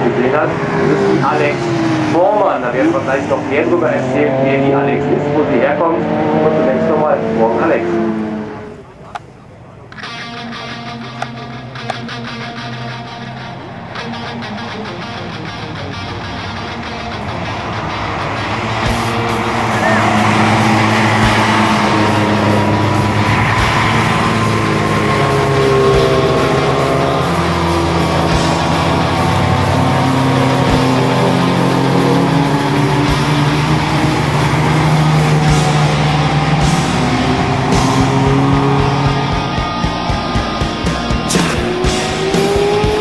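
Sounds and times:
race car engines passing: 0:00.0 - 0:43.0
music playing: 0:10.0 - 0:43.0.

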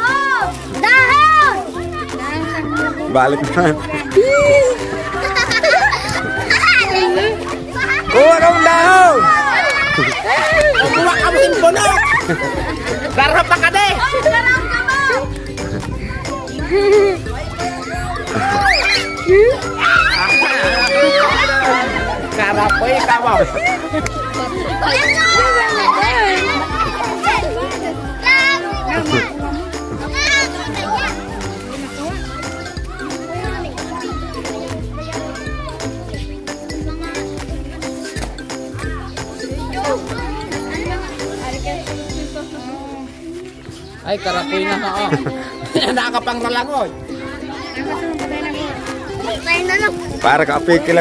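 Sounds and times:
children shouting excitedly: 0:00.0 - 0:43.1, 0:43.7 - 0:51.0
background music: 0:00.0 - 0:51.0.

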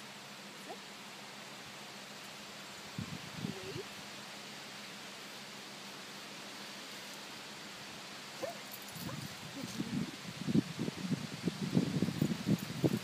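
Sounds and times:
outdoor hiss: 0:00.0 - 0:13.0.

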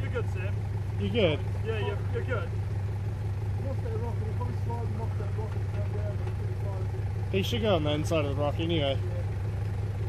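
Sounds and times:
car engine idling low: 0:00.0 - 0:10.0.

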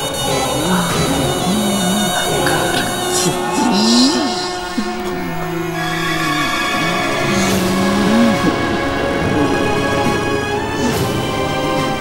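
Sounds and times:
man sobbing moan: 0:00.0 - 0:10.1, 0:10.7 - 0:11.2
eerie music drone: 0:00.0 - 0:12.0.

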